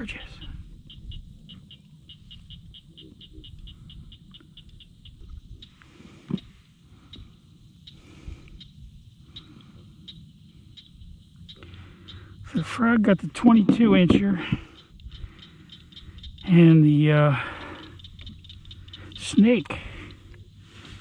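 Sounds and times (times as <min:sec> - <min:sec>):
small animal high clicking calls: 0:00.8 - 0:06.5, 0:07.8 - 0:12.4, 0:14.7 - 0:16.7, 0:17.4 - 0:20.4.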